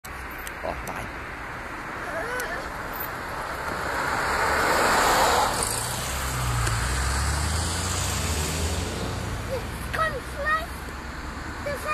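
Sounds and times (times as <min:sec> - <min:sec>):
low traffic engine rumble: 0:00.0 - 0:11.9
car passing close by: 0:02.8 - 0:10.0.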